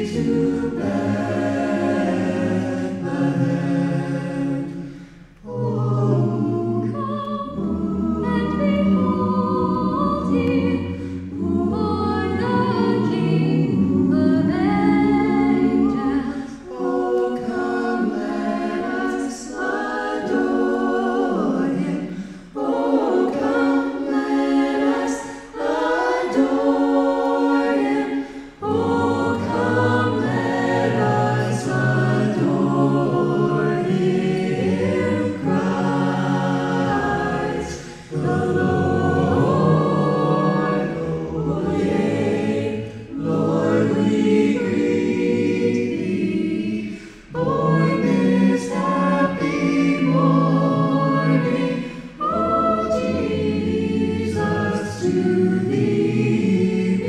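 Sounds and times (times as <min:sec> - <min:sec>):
vocal ensemble singing in harmony: 0:00.0 - 0:57.0.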